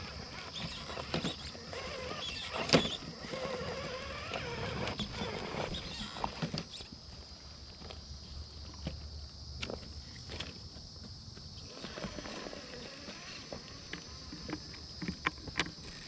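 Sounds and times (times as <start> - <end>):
rc car motor whining: 0.0 - 6.9, 11.6 - 14.4.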